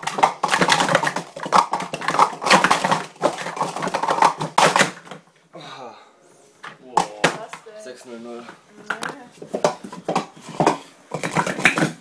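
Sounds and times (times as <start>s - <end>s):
plastic cups clattering: 0.0s - 5.3s, 8.9s - 12.0s.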